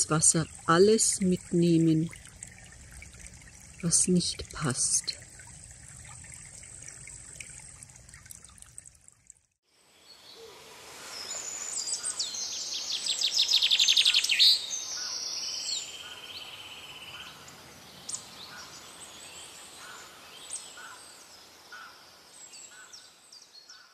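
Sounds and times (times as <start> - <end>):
brook splashing: 0.0 - 9.6
steady background hiss: 9.7 - 23.6
songbirds singing and calling: 11.1 - 23.9.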